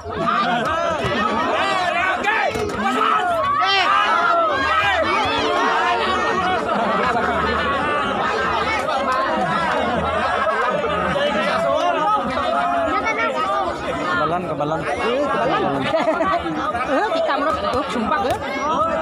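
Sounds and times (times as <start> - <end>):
crowd chattering: 0.0 - 19.0.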